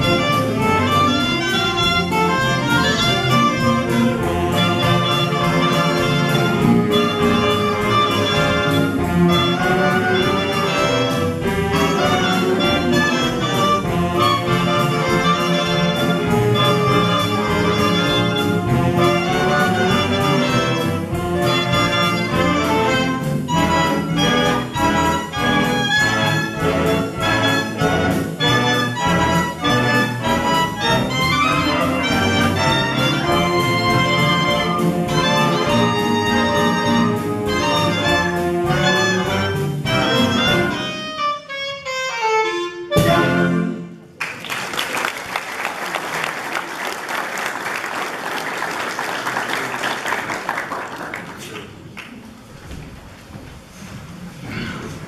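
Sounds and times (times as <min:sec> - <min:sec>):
big band playing swing: 0:00.0 - 0:55.0.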